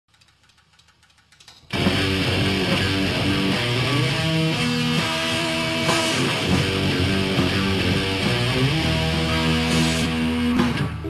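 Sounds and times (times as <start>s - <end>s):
faint clicks: 0.1s - 1.8s
rock band playing loud riff: 1.7s - 11.0s.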